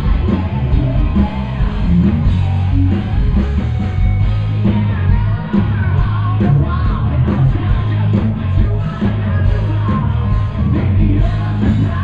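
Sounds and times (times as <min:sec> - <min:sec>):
live hard rock band: 0:00.0 - 0:12.0
person singing: 0:04.3 - 0:12.0.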